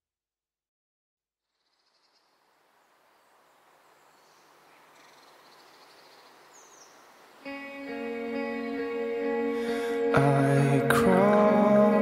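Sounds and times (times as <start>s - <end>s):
soft open-air hiss: 1.5s - 10.1s
high bird chirps: 3.2s - 7.5s.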